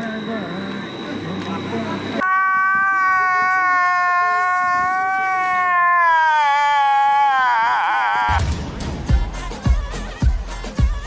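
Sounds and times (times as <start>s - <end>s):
people's voices: 0.0s - 5.6s
street noise: 0.0s - 6.4s
man crying in a high wail: 2.2s - 8.4s.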